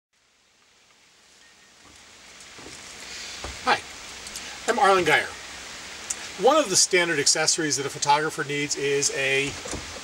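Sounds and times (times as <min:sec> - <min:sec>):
faint outdoor background hiss: 0:00.2 - 0:10.0.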